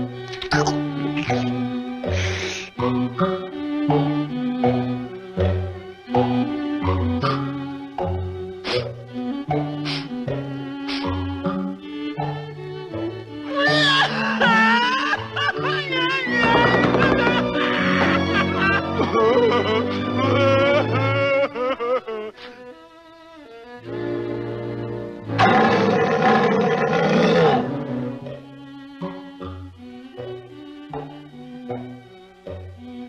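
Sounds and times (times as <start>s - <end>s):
orchestral cartoon music: 0.0s - 33.0s
cartoon lion wailing: 13.5s - 22.1s, 25.4s - 27.9s
cartoon lion roaring: 25.4s - 28.2s.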